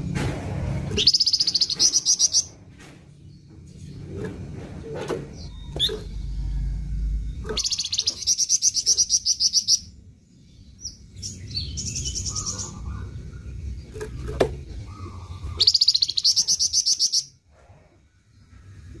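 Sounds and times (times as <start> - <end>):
songbird trilling: 1.0 - 2.5, 7.3 - 10.0, 10.8 - 14.2, 14.8 - 17.4.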